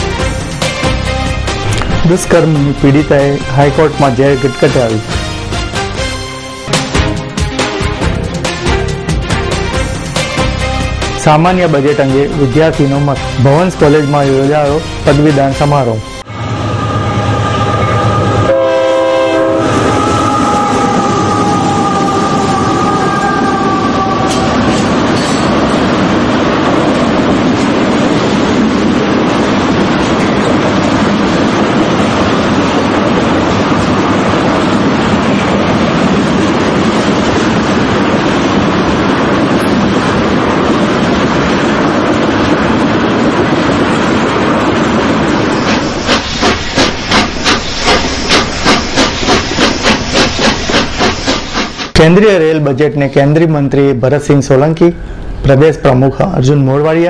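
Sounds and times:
train wagons rumbling on track: 0.0s - 57.0s
train horn: 16.2s - 25.0s.

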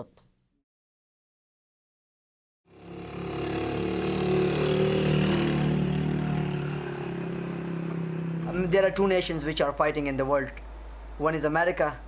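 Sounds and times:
small vehicle engine running: 2.7s - 8.6s.

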